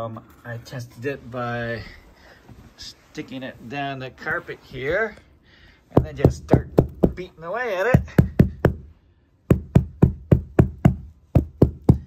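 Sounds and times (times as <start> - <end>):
hand slapping carpeted floor: 9.5 - 12.0.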